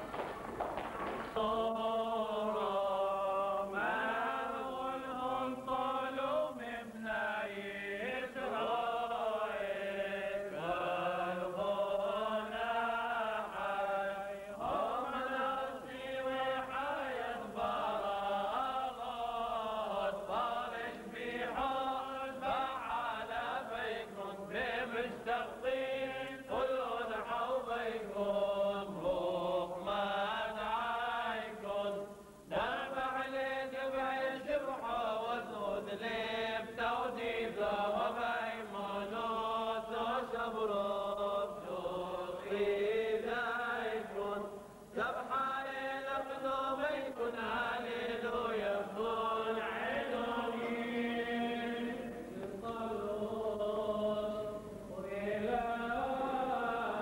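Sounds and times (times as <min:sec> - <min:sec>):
men chanting together: 0:01.4 - 0:57.0.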